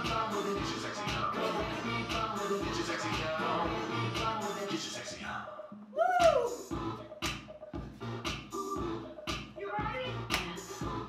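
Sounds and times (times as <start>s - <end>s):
upbeat dance music: 0.0s - 11.0s.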